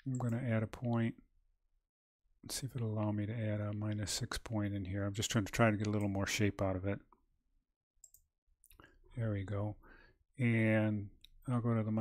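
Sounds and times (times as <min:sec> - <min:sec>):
faint computer mouse click: 0:08.0 - 0:08.8.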